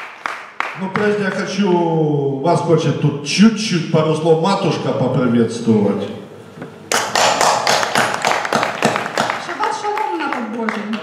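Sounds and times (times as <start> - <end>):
congregation clapping: 0.0 - 1.5, 6.9 - 11.0.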